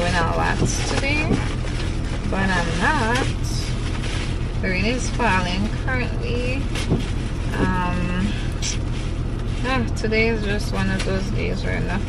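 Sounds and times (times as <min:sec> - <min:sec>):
woman's voice: 0:00.0 - 0:01.5, 0:02.2 - 0:03.8, 0:04.6 - 0:06.8, 0:07.5 - 0:08.8, 0:09.6 - 0:12.0
car cabin hum: 0:00.0 - 0:12.0.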